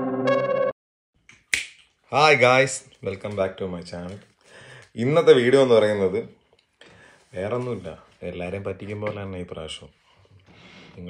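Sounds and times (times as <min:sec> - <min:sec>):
synthesizer chords: 0:00.0 - 0:00.7
finger snap: 0:01.2 - 0:01.9.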